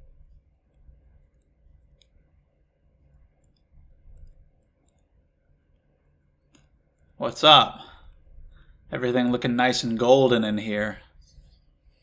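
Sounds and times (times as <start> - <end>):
small clicks: 0.3 - 2.4, 3.0 - 7.2.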